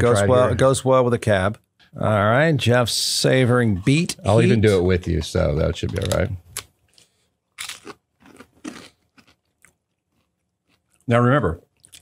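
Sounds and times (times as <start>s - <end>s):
crunchy chewing: 6.0s - 11.1s.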